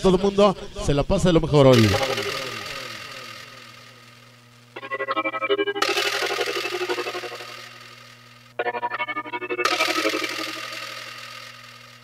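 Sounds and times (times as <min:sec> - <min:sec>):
synthesizer keyboard cumbia music: 0:01.7 - 0:03.8, 0:04.8 - 0:07.9, 0:08.6 - 0:11.3.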